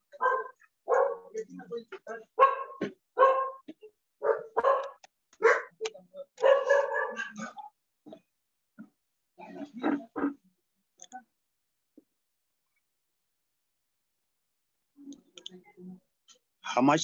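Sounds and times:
dog barking: 0.1 - 1.4, 2.4 - 7.7.

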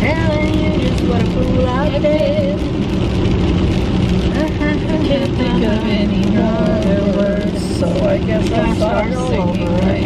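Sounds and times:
rain pattering on car roof: 0.0 - 10.0
road rumble in car: 0.0 - 10.0.

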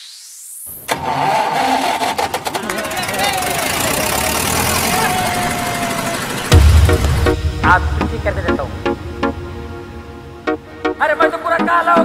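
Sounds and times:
rising whoosh with sharp hit: 4.9 - 10.2.

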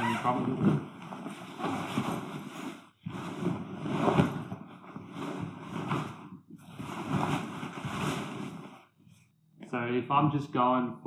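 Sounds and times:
heavy fabric rustling and sliding: 0.0 - 9.3.

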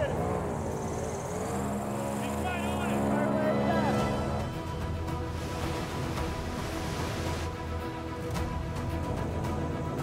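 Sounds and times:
airboat engine and propeller: 0.0 - 10.0.

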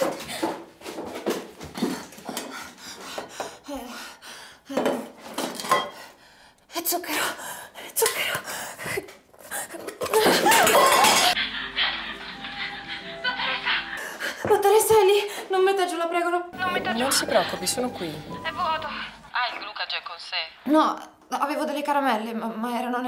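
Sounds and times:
metal tins clinking and clattering: 9.9 - 11.4.

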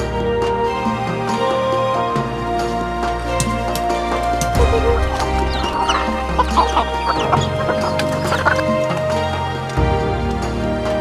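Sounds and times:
background music: 0.0 - 11.0
chickens clucking and peeping: 4.6 - 9.1.

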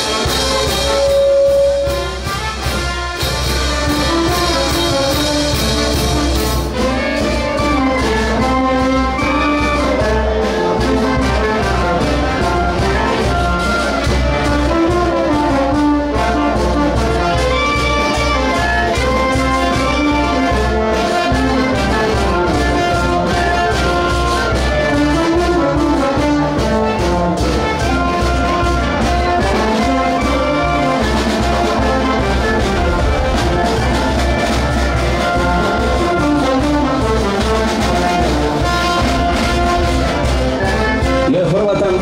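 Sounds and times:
brass band music: 0.0 - 42.0.

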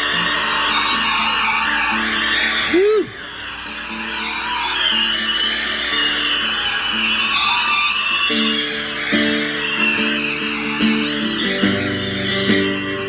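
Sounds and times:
country-rock band playing live: 8.2 - 13.0.

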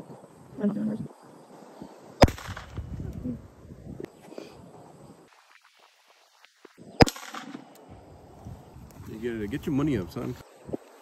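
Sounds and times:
rifle shots with echo: 2.2 - 2.9, 7.0 - 7.7.

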